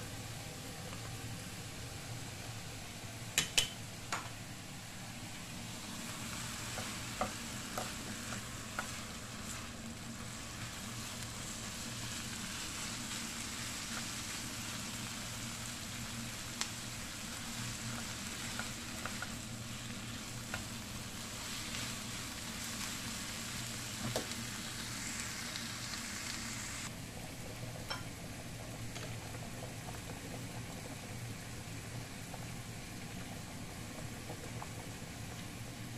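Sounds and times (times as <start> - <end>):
bacon and onion sizzling: 0.0 - 35.9
pasta boiling in a pot: 0.0 - 35.9.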